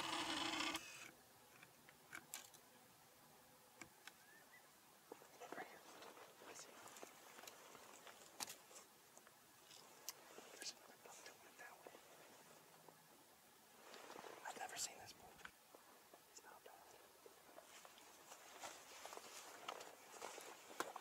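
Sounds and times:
faint whispering voices: 5.1 - 7.8, 10.2 - 12.6, 13.9 - 15.5, 16.3 - 21.0.

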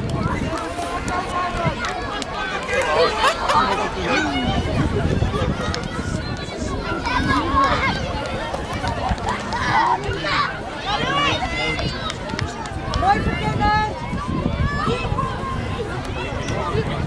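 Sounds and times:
overlapping voices chattering: 0.0 - 17.0.

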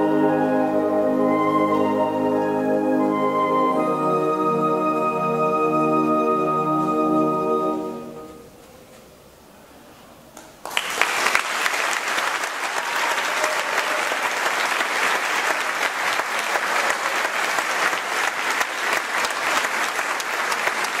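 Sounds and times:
audience clapping: 10.6 - 21.0.

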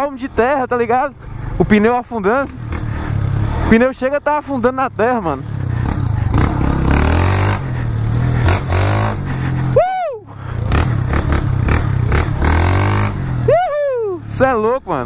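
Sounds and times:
motorcycle engine revving under load: 2.2 - 3.9, 5.4 - 9.8, 10.4 - 13.5
person whooping shouts: 9.8 - 10.3, 13.5 - 14.3.

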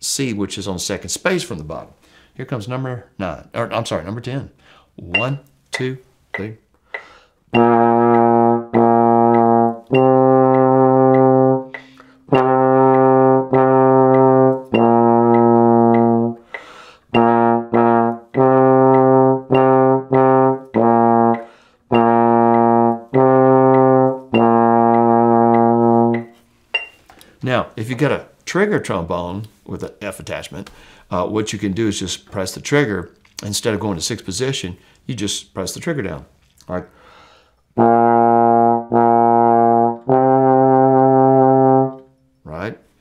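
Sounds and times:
breath intake: 6.8 - 7.4, 16.4 - 17.1, 36.9 - 37.7
trombone playing low notes: 7.5 - 16.4, 17.1 - 26.4, 37.8 - 42.1.

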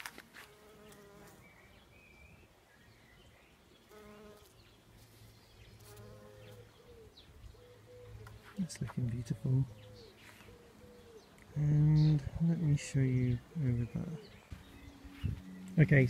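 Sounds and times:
bumblebee buzzing faintly: 0.3 - 1.7, 3.8 - 7.0.

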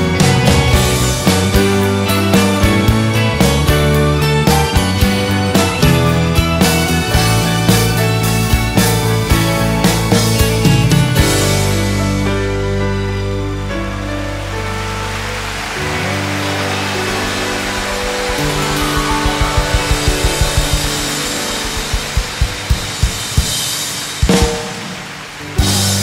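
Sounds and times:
guitars holding a chord: 0.0 - 25.3
live rock band: 0.0 - 26.0
rapid drum hits: 15.6 - 26.0.

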